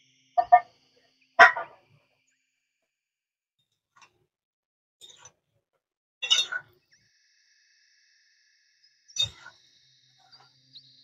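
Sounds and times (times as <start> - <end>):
animal calling: 0.4 - 0.6, 1.4 - 1.7.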